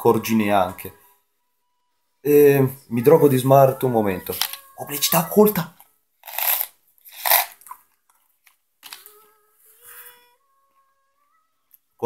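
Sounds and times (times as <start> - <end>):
candies crunching: 5.5 - 9.1.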